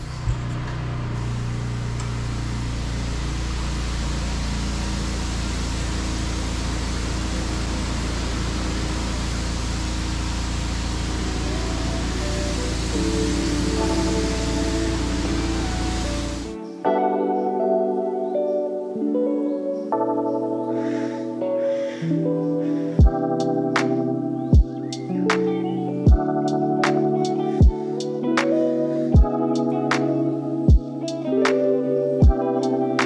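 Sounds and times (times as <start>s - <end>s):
pressure washer spraying: 5.4s - 16.5s
music with plucked notes: 11.2s - 33.0s.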